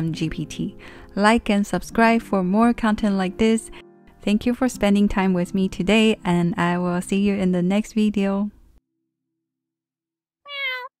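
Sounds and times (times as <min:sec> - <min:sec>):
cat meow: 0:10.5 - 0:11.0.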